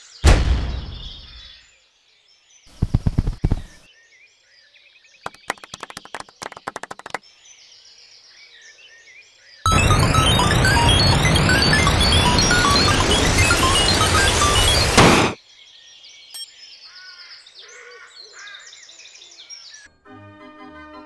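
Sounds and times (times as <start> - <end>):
faint birdsong: 0.0 - 11.2, 11.8 - 20.0
heavy thuds: 0.2 - 1.4
explosion bang with low rumble: 0.2 - 1.5
rapid sharp knocks: 2.7 - 3.8, 5.3 - 7.2
loud music: 9.7 - 15.4.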